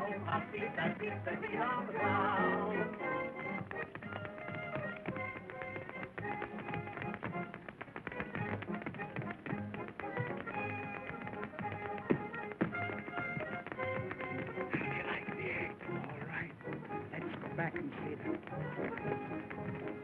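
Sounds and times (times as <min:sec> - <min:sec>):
dance-band music: 0:00.0 - 0:20.0
tap shoes striking stage floor: 0:00.3 - 0:20.0.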